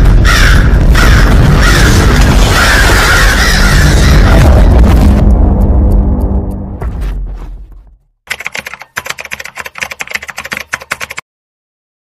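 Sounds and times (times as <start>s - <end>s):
keyboard typing clicks: 8.3s - 11.2s.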